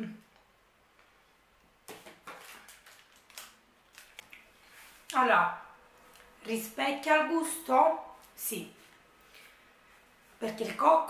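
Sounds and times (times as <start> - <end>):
plastic wrapper crinkling: 1.9 - 5.2.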